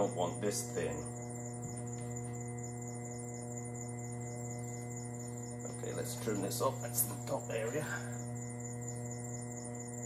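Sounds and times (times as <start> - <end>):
electrical hum: 0.0 - 10.0.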